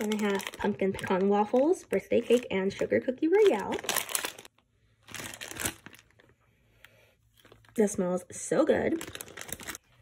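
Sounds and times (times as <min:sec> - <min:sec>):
plastic bag crinkling: 0:00.0 - 0:06.4, 0:08.8 - 0:10.0.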